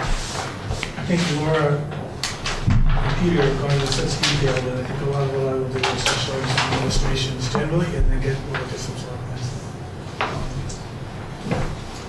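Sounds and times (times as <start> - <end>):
room background noise: 0.0 - 12.0.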